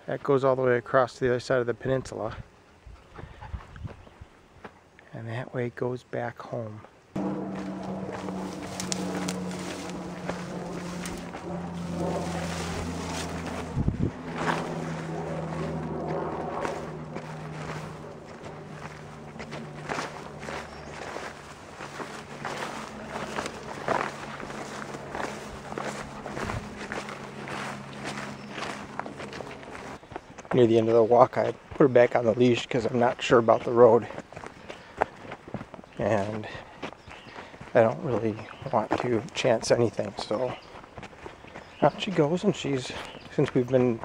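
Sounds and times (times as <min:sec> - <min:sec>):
footsteps on dirt trail: 0:06.8 - 0:44.0
low drone of held tones: 0:07.2 - 0:30.0.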